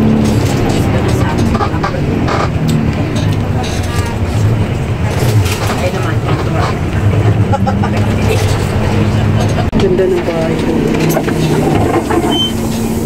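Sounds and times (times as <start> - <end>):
bus engine hum: 0.0 - 13.0
indistinct voices: 0.0 - 13.0.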